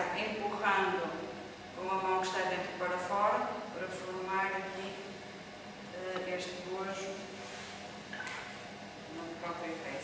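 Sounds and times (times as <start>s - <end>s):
potter's wheel humming: 0.0s - 10.0s.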